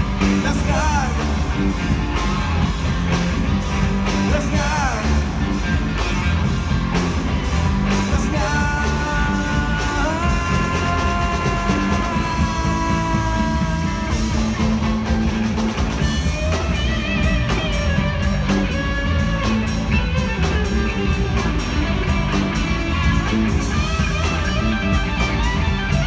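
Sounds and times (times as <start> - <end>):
rock band playing: 0.0 - 26.0.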